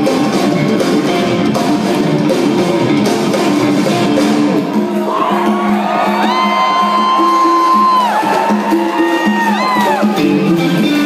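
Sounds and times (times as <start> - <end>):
live rock band playing: 0.0 - 11.0
crowd cheering and whooping: 4.6 - 10.8.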